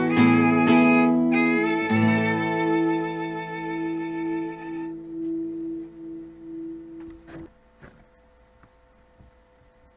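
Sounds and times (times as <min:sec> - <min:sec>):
fiddle holding a long note: 0:00.0 - 0:06.2.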